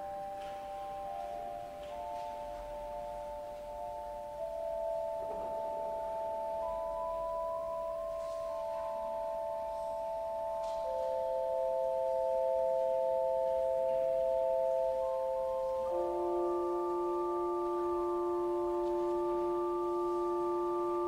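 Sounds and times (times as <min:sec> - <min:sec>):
pipe organ sustained chords: 0:00.0 - 0:21.0.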